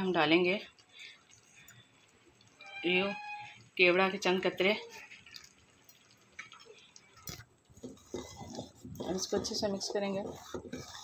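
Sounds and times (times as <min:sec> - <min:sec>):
ladle stirring in steel pot: 0:00.1 - 0:11.0.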